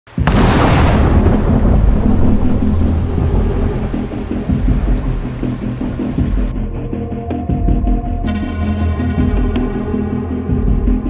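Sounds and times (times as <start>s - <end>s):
heavy rain: 0.1s - 6.5s
thunderclap rolling into rumble: 0.2s - 6.5s.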